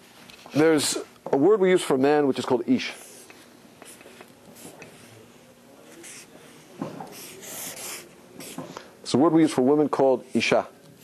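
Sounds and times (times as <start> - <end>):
marker writing on paper: 3.0 - 5.2, 5.8 - 8.7.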